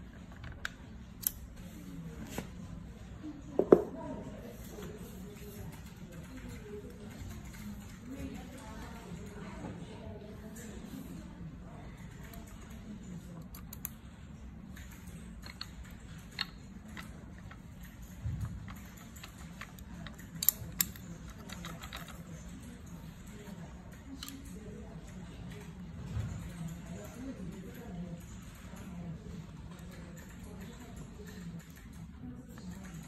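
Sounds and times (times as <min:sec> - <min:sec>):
small parts clicking: 0:00.3 - 0:01.5, 0:13.4 - 0:14.0, 0:14.8 - 0:22.5.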